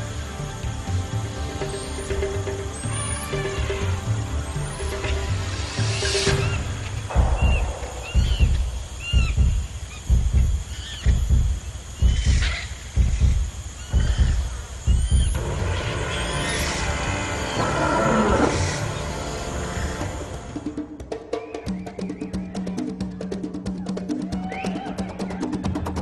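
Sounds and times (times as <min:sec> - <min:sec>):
low drum beat: 0:00.6 - 0:16.1
chirping bird calls: 0:01.6 - 0:20.4
high sliding whistles: 0:04.7 - 0:11.2.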